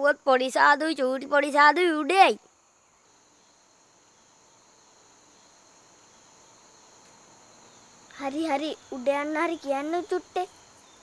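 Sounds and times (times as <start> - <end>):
high-pitched insect chirring: 0.0 - 11.0.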